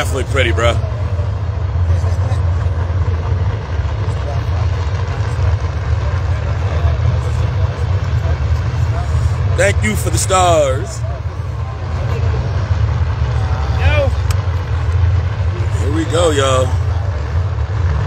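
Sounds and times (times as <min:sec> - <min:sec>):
murmur of crowd: 0:00.0 - 0:18.0
race car engines idling: 0:00.0 - 0:18.0.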